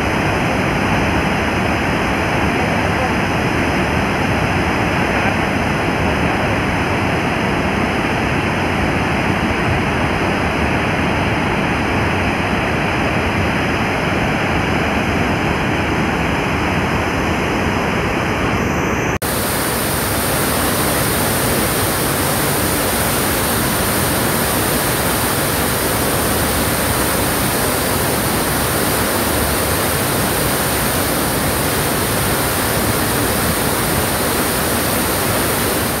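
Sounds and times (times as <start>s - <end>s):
water rushing through spillway: 0.0s - 17.3s, 19.2s - 36.0s.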